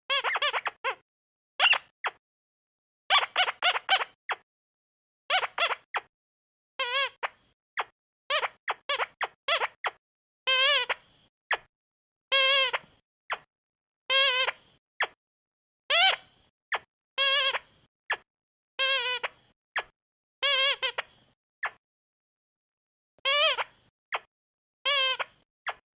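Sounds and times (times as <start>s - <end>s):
squeaky rubber dog toy: 0.1s - 1.0s, 1.6s - 2.2s, 3.1s - 4.4s, 5.3s - 6.1s, 6.8s - 11.7s, 12.3s - 13.5s, 14.1s - 15.2s, 15.9s - 21.8s, 23.2s - 25.8s.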